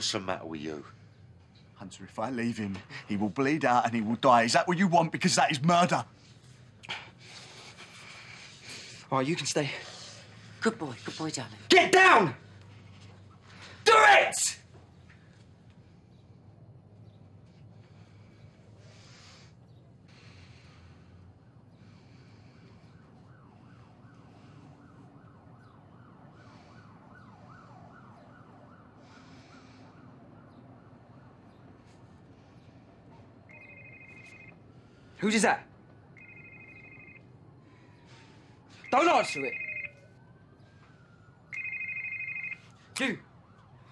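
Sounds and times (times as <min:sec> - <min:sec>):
faint sirens wailing: 0:00.0 - 0:43.9
mobile phone ringing: 0:33.5 - 0:34.6, 0:36.2 - 0:37.3, 0:38.8 - 0:40.0, 0:41.5 - 0:42.7.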